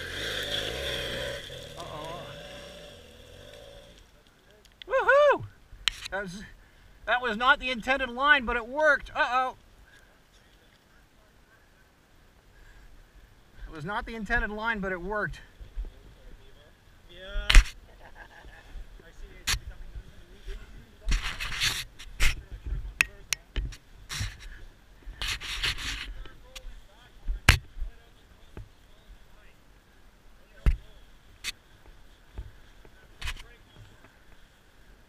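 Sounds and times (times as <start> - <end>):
rustling: 0.0 - 7.6, 17.3 - 23.0, 23.6 - 29.5.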